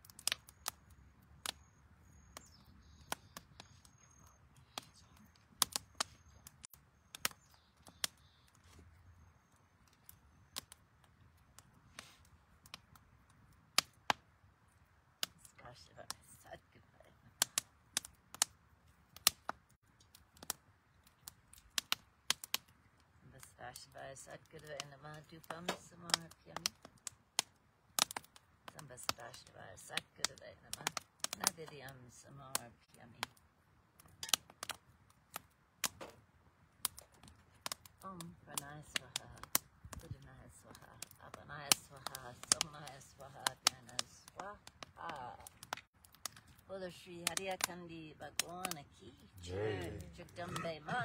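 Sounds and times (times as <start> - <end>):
wood fire crackling: 0.0 - 51.0
low voices murmuring: 49.2 - 51.0.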